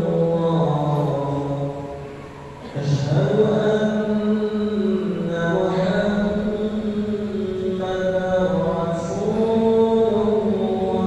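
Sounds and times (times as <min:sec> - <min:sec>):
man chanting prayer: 0:00.0 - 0:11.0.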